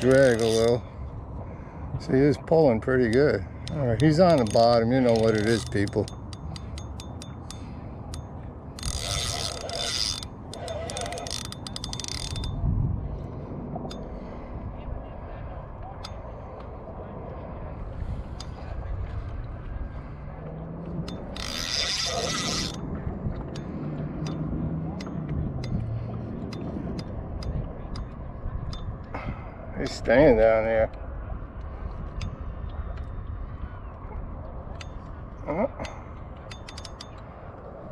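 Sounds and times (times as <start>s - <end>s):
spinning reel clicking: 0.0s - 0.8s, 3.6s - 12.6s, 21.0s - 22.8s.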